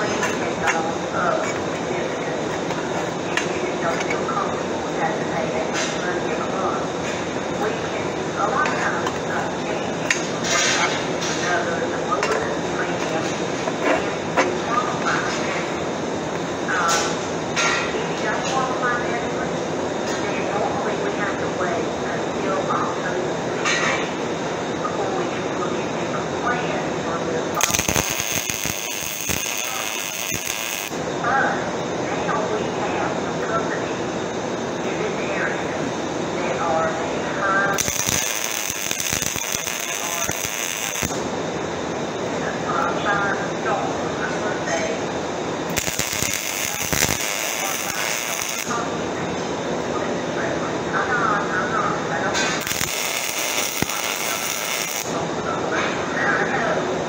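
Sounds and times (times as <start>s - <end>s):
workshop noise: 0.0s - 18.6s, 26.9s - 32.0s, 37.0s - 49.9s, 52.0s - 56.2s
welding arc crackling and sizzling: 27.5s - 31.1s, 37.6s - 41.7s, 44.8s - 49.2s, 52.3s - 55.2s.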